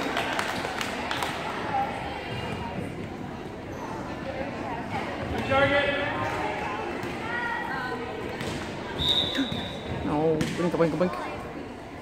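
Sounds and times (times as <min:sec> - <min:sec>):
spectators chatting: 0:00.0 - 0:12.0
referee's whistle blast: 0:09.0 - 0:09.9.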